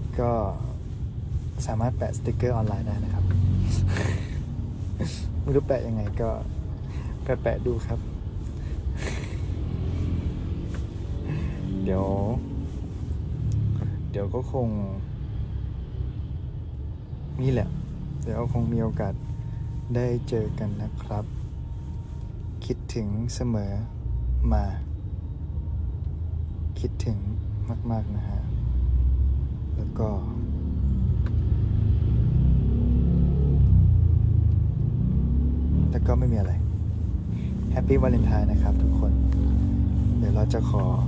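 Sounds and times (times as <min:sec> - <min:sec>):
faint music: 0:00.0 - 0:32.1
car engine and road noise: 0:00.0 - 0:41.0.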